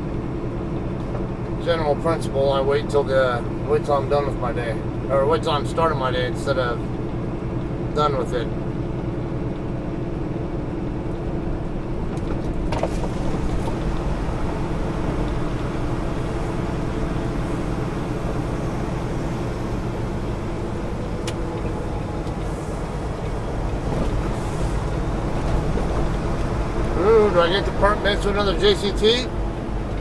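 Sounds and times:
truck diesel engine drone: 0.0 - 30.0.

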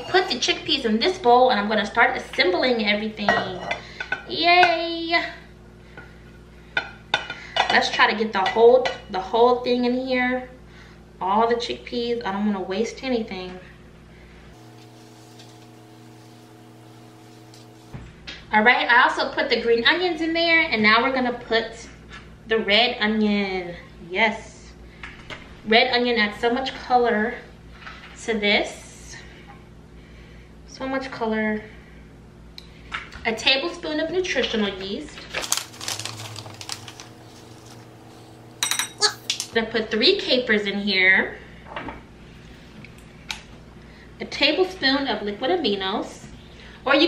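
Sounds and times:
low steady hum: 0.0 - 45.4
flakes rustling and ticking: 35.4 - 37.8.

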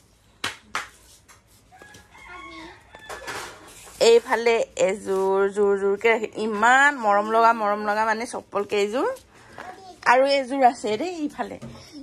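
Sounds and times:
distant rooster crowing: 1.7 - 3.8.

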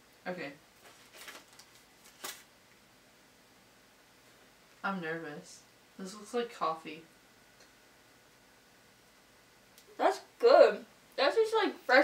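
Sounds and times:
snack cake rustling: 0.8 - 2.5.

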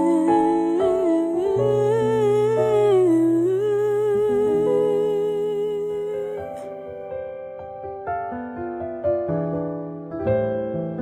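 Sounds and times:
person humming with vibrato: 0.0 - 6.7.

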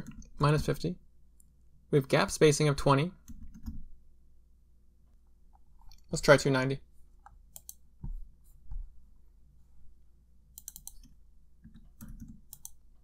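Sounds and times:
mouse clicks: 7.2 - 7.8, 10.5 - 12.8
computer keyboard keystrokes: 10.6 - 11.1, 11.7 - 12.8.

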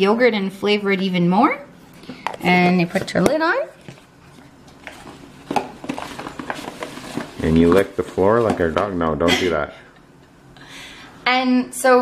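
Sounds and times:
plastic container handling: 2.1 - 9.0.

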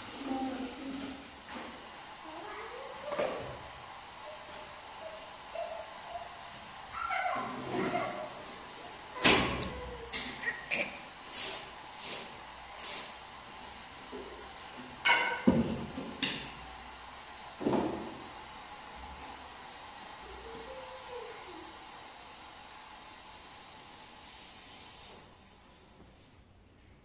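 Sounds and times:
faint steady hiss: 0.0 - 27.0.

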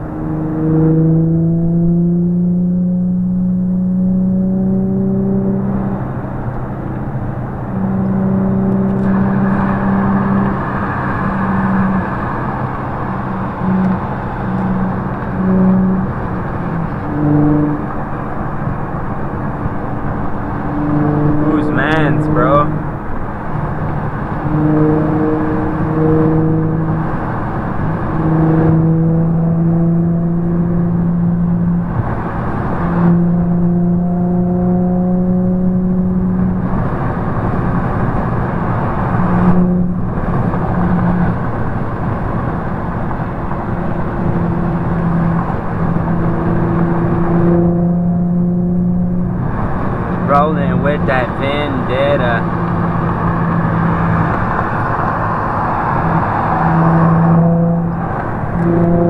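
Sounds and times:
car road and engine noise: 0.0 - 59.0
held low tones: 0.0 - 59.0
person speaking: 21.4 - 22.8, 50.2 - 52.4.

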